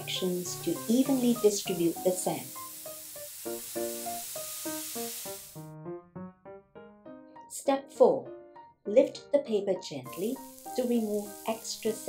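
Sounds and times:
background music of short notes: 0.0s - 12.0s
sand hissing across paper: 0.6s - 5.6s.

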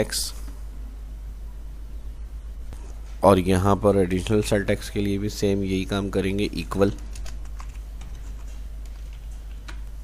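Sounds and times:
low steady hum: 0.0s - 10.0s
keyboard keys clicking: 6.9s - 9.9s.

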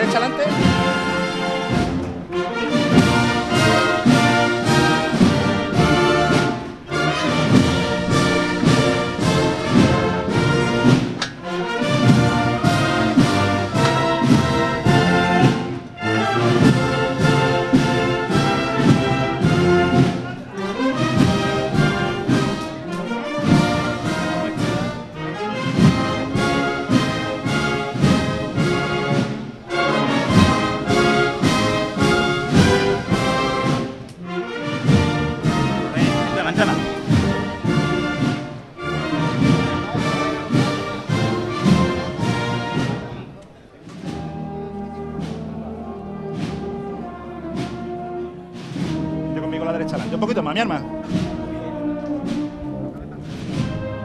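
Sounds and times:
brass band playing a march: 0.0s - 54.0s.

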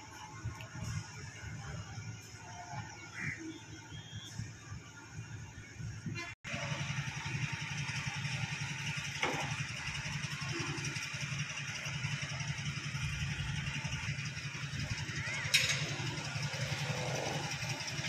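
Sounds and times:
engine idling: 6.5s - 18.0s.

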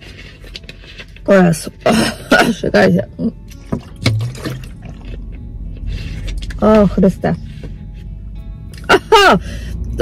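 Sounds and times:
person sipping and swallowing: 4.1s - 6.6s.

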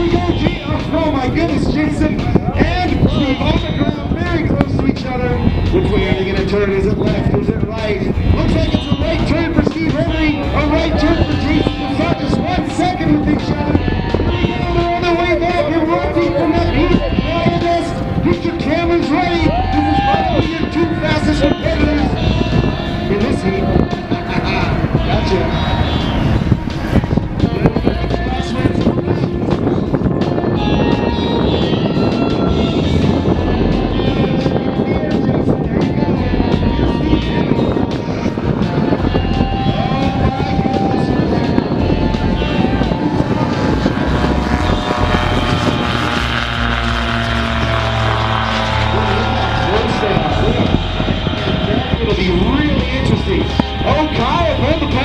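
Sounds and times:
background music: 0.0s - 55.0s
voices: 0.0s - 55.0s
propeller plane engines passing: 40.9s - 55.0s.

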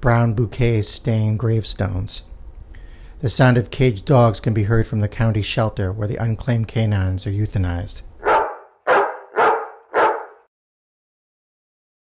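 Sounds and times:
dogs barking: 8.2s - 10.5s.

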